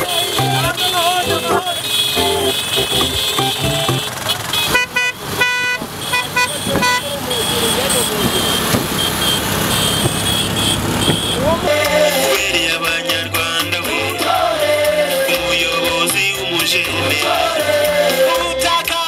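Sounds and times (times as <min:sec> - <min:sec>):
motorcycle horn toots: 0:00.0 - 0:11.7
motorcycles running: 0:00.0 - 0:18.5
people shouting: 0:11.1 - 0:12.6.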